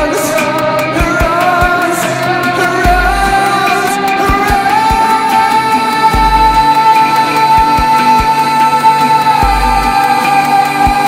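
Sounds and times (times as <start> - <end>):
band playing rock ballad: 0.0 - 11.0
man singing long high note: 0.0 - 11.0.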